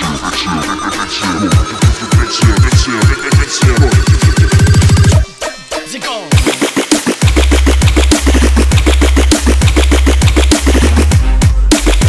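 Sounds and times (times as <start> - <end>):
punchy percussion hits: 6.3 - 12.0.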